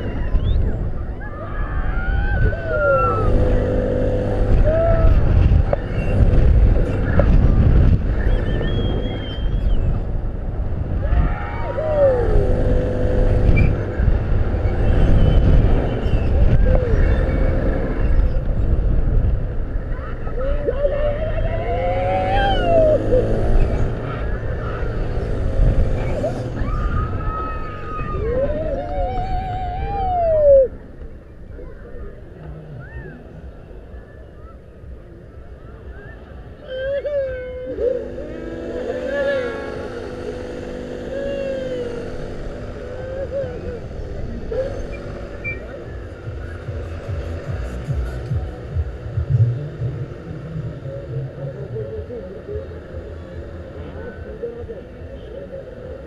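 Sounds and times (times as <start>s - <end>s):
wind rush on microphone: 0.0s - 34.0s
riders whooping and screaming: 0.0s - 56.0s.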